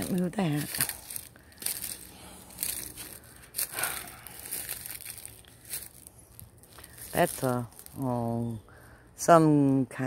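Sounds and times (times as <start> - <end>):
leaves crunching underfoot: 0.0 - 8.6.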